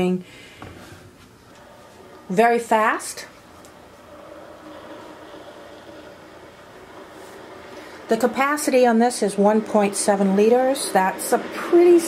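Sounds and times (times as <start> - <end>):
electric kettle heating water: 0.0 - 12.0.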